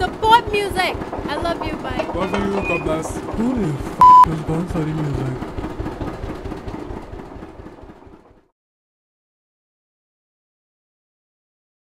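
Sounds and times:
car engine pulling away: 2.0 - 8.5.

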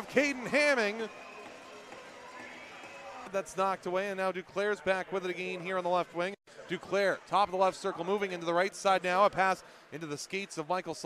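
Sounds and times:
faint crowd noise: 0.0 - 11.0.

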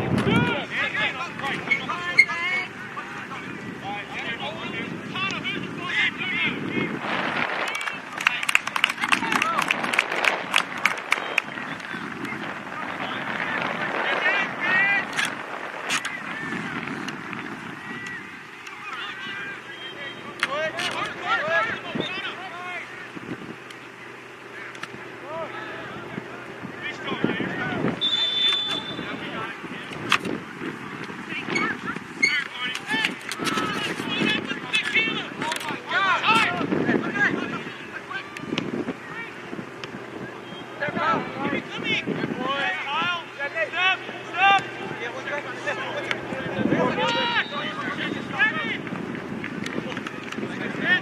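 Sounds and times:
distant shouting voices: 0.0 - 51.0.

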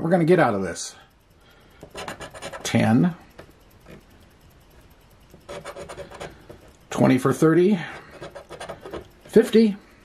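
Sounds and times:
coin scratching a ticket: 1.9 - 3.0, 5.4 - 6.4, 7.9 - 9.1.

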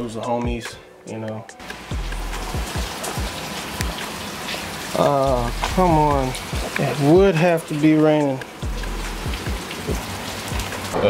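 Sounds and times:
steady rain falling: 1.6 - 11.0
deep bass kicks: 5.3 - 6.6, 8.6 - 9.6.

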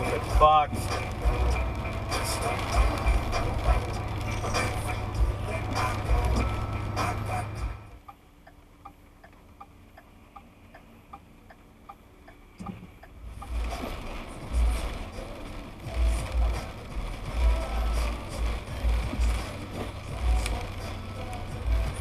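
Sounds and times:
car idling: 0.0 - 22.0
road noise on wet road: 0.0 - 22.0
low rumbles on microphone: 12.6 - 22.0.

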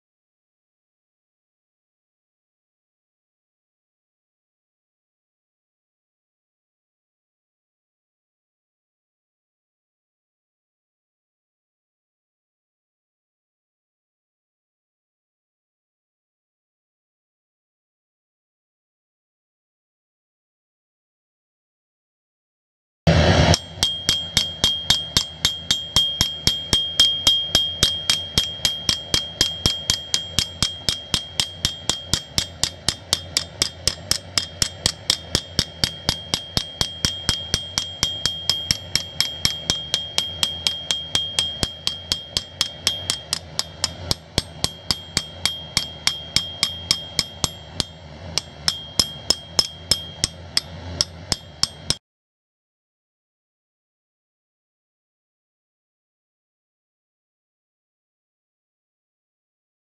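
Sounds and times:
hammer striking metal on anvil: 23.1 - 52.0
metal ringing: 23.1 - 52.0.

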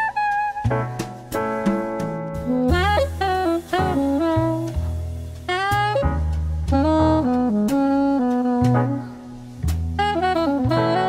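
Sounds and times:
bass line: 0.0 - 11.0
saxophone melody: 0.0 - 11.0.

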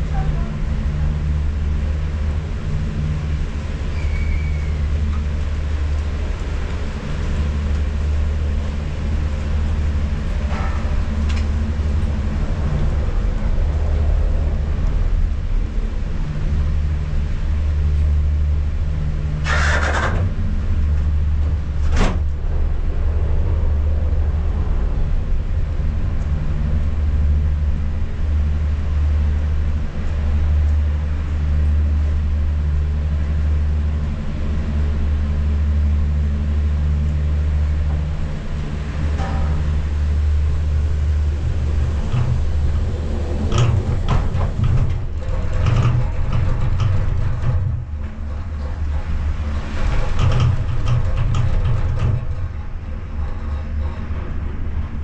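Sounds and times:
gondola machinery hum and rumble: 0.0 - 55.0.

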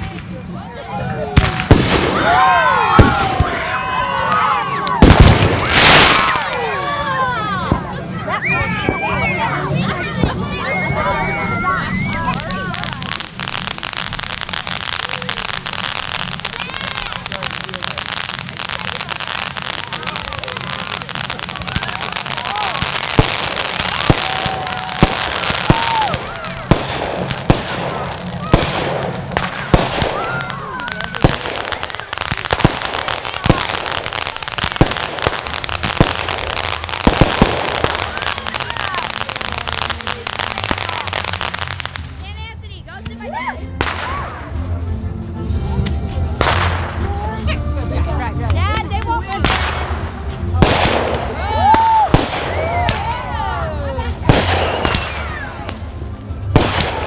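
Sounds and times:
firework fountain hissing: 0.0 - 42.2, 49.4 - 57.0
fireworks bangs and crackles: 0.0 - 42.5, 43.8 - 44.9, 45.5 - 57.0.

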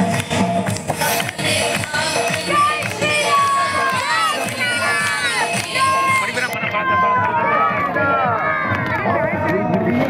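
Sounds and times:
crowd talking and calling: 0.0 - 10.0.

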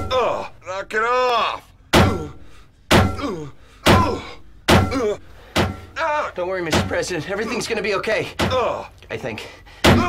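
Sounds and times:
heavy punch thunks: 1.9 - 5.9.

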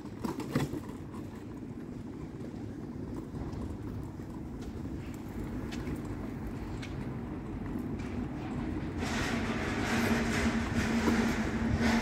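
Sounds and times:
diesel engine and tyres: 0.0 - 12.0
steady engine hum: 0.0 - 12.0.

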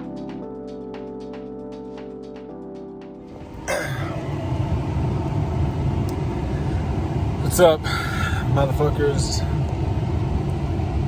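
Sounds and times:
background music: 0.0 - 4.4.

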